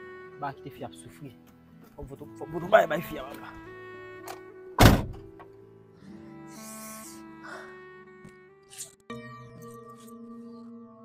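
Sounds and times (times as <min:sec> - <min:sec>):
background music: 0:00.0 - 0:11.0
car door slamming: 0:04.8 - 0:05.5.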